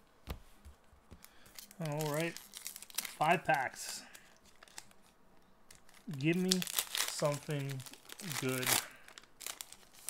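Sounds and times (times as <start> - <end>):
wrapper crinkling: 1.2 - 10.0.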